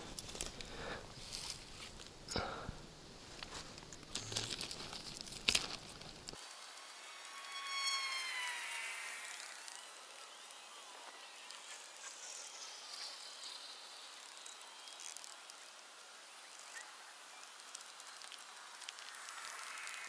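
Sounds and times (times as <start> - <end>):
long descending call or creak: 6.4 - 15.5, 18.2 - 20.0
faint high descending sounds: 6.4 - 17.4.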